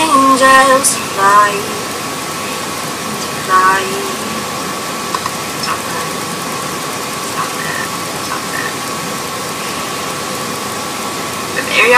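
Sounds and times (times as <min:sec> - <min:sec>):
faint constant hum: 0:00.0 - 0:11.9
steady background hiss: 0:00.0 - 0:11.9.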